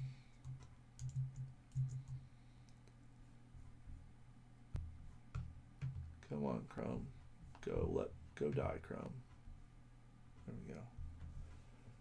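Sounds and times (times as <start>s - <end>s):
computer keyboard typing: 0.3s - 2.2s.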